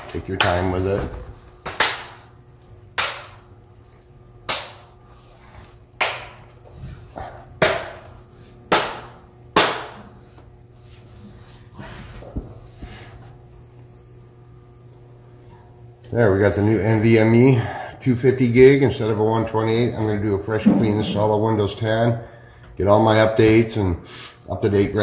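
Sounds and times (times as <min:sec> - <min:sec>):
quiet handling: 0:20.6 - 0:21.9.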